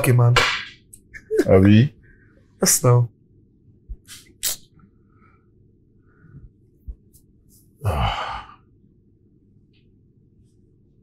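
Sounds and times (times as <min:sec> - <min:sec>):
man sighing heavily: 0:07.8 - 0:08.6.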